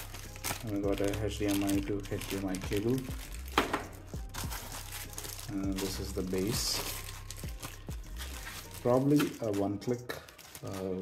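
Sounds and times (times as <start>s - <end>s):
plastic bags rustling: 0.0s - 11.0s
sharp plastic crackle: 0.0s - 11.0s.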